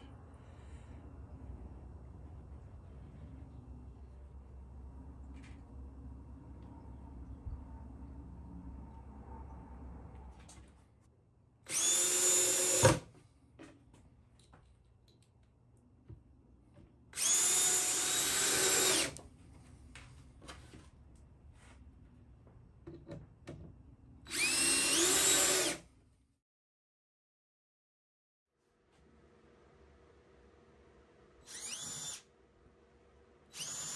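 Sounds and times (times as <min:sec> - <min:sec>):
cordless drill motor whine: 0:11.7 - 0:13.0, 0:17.2 - 0:19.2, 0:24.3 - 0:25.8, 0:31.4 - 0:32.3, 0:33.5 - 0:33.9.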